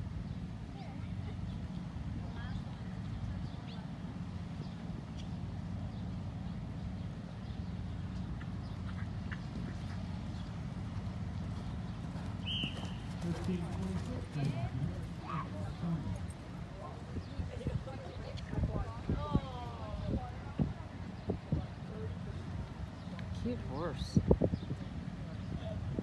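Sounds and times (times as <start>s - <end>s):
cantering horse hoofbeats: 8.0s - 16.6s
faint distant voices: 8.6s - 26.0s.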